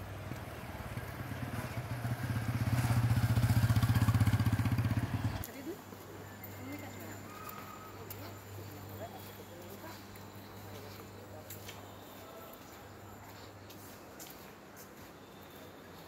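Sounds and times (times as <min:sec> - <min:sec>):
small motorbike engine running: 0:00.3 - 0:05.4.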